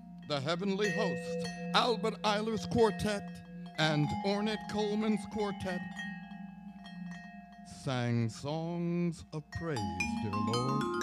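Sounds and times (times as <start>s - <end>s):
vibraphone notes ringing: 0.0s - 11.0s
man speaking: 0.3s - 5.9s, 7.7s - 11.0s.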